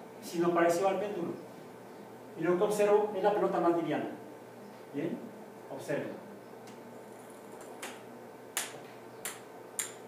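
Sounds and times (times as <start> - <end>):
ping-pong ball bouncing on floor: 8.6 - 10.0.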